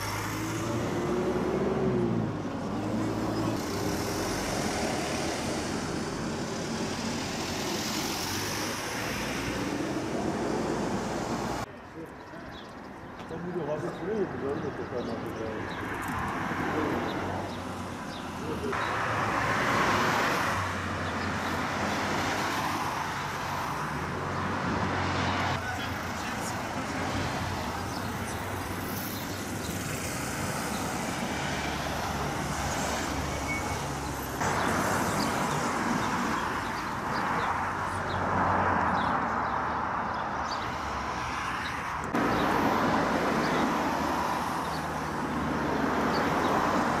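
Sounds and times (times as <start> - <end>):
cars driving past: 0.0 - 11.7, 13.3 - 47.0.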